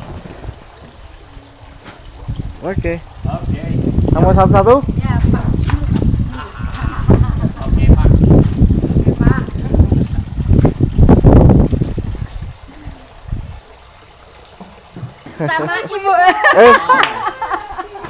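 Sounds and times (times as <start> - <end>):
wind buffeting microphone: 0.0 - 13.8.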